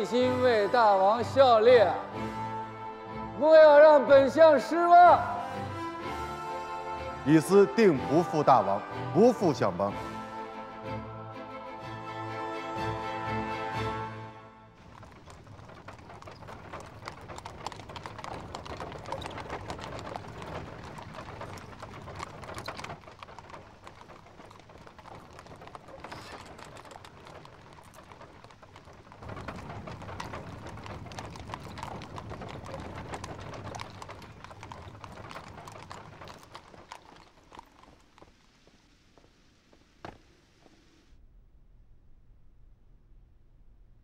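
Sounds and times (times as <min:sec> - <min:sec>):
hooves clip-clopping on stone: 0:04.4 - 0:10.1, 0:14.8 - 0:41.0.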